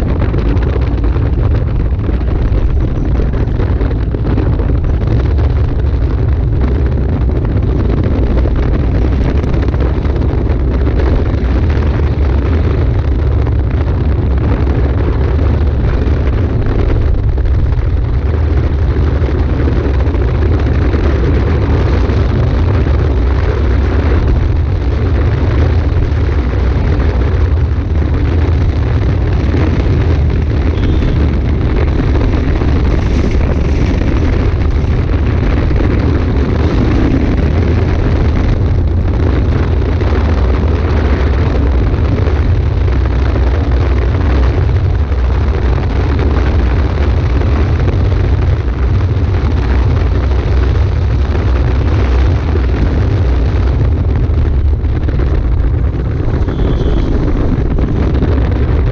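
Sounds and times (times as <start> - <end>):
small wheels rolling on asphalt: 0.0 - 58.9
wind buffeting microphone: 0.0 - 58.9.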